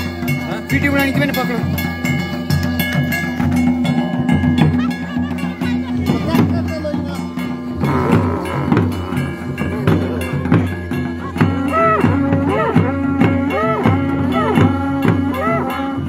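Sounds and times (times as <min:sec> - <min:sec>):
barrel drum beating: 0:00.0 - 0:16.0
village band music: 0:00.0 - 0:16.0
wind instruments holding notes: 0:07.2 - 0:16.0.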